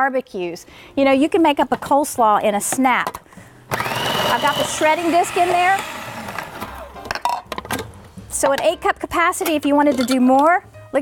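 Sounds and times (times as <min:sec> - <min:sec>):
food processor motor winding down: 0:03.7 - 0:07.0.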